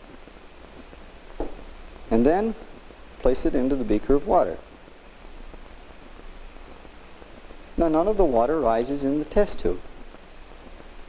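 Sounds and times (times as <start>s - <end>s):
film soundtrack hiss and hum: 0.0s - 11.0s.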